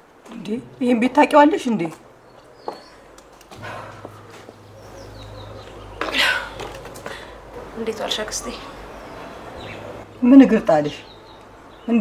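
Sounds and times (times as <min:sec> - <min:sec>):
low hum: 0:03.0 - 0:10.3.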